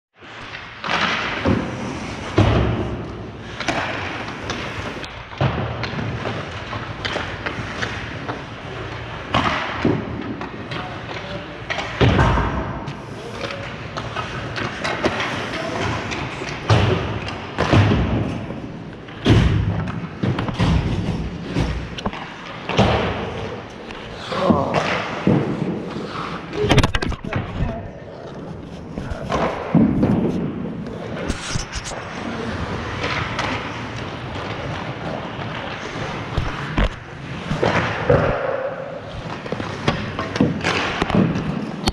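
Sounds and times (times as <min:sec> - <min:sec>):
skates scraping on ice: 0:00.2 - 0:12.0, 0:12.6 - 0:41.9
pucks and sticks striking ice: 0:00.4 - 0:27.5, 0:28.8 - 0:41.9.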